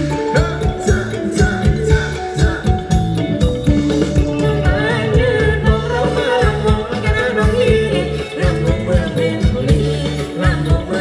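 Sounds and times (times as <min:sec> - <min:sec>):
steady drum beat: 0:00.0 - 0:11.0
person singing wavering melody: 0:04.1 - 0:11.0.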